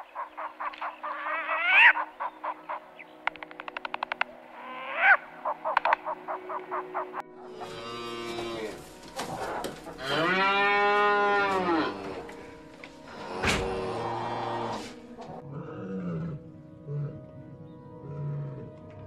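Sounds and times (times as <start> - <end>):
owl rhythmic calls: 0.0 - 10.4
cow mooing: 7.4 - 12.5, 13.1 - 17.2.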